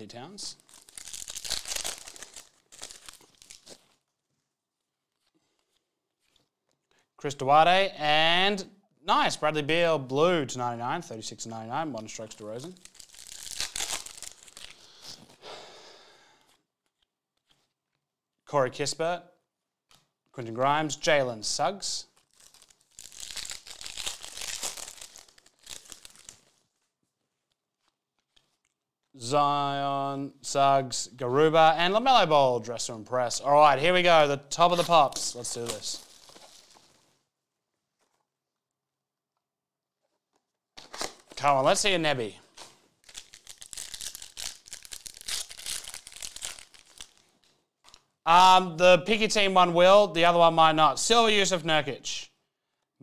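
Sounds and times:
foil wrapper tearing and crinkling: 0:00.6 - 0:04.1, 0:12.2 - 0:15.3, 0:22.2 - 0:26.9, 0:34.7 - 0:37.2, 0:40.8 - 0:41.4, 0:42.5 - 0:48.1.

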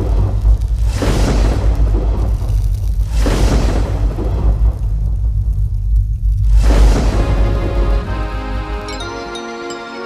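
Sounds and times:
deep sub-bass rumble: 0:00.0 - 0:07.2.

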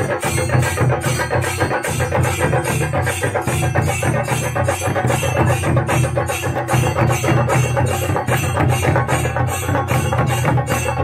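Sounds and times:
bronze hand cymbals clashing: 0:00.0 - 0:11.0
drum ensemble beaten with sticks: 0:00.0 - 0:11.0.

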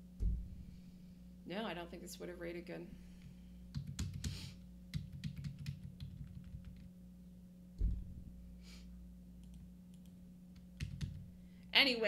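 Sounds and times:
low electrical hum: 0:00.0 - 0:12.0
dull thump: 0:00.2 - 0:00.8, 0:07.8 - 0:08.5
computer keyboard typing: 0:03.7 - 0:06.9, 0:10.8 - 0:11.2.

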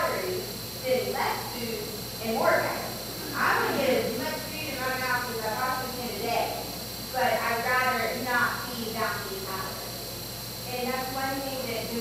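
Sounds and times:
woman speaking into microphone: 0:00.0 - 0:09.9, 0:10.7 - 0:12.0.

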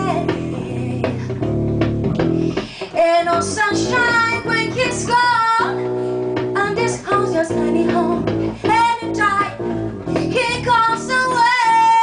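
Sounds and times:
plucked guitar fill: 0:00.0 - 0:12.0.

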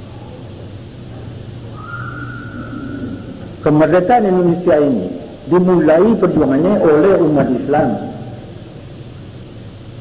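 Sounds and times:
old recording hiss: 0:00.0 - 0:10.0.

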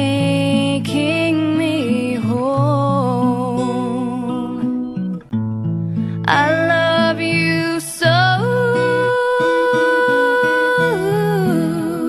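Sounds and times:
acoustic guitar: 0:00.0 - 0:12.0
person singing long wordless note: 0:06.3 - 0:12.0.

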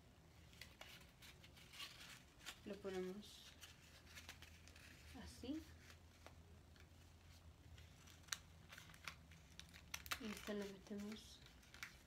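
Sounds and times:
low steady hum: 0:00.0 - 0:12.0
cardboard and tape crinkles: 0:00.4 - 0:12.0.

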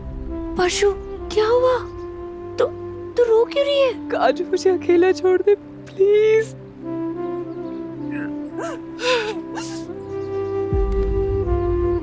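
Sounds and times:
background music: 0:00.0 - 0:12.0
woman sobbing: 0:08.1 - 0:10.0.

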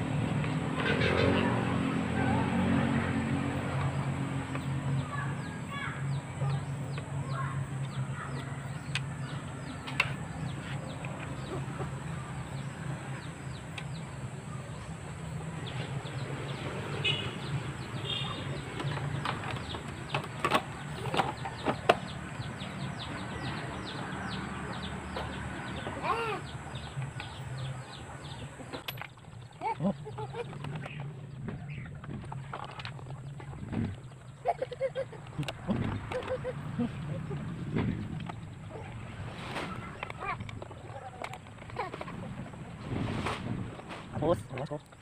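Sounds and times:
birds chirping: 0:00.0 - 0:45.0
chickens clucking: 0:06.4 - 0:15.0, 0:33.2 - 0:44.3.

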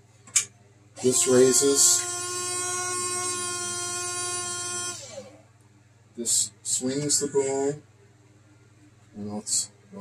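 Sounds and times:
small electric motor whining: 0:01.0 - 0:05.4.

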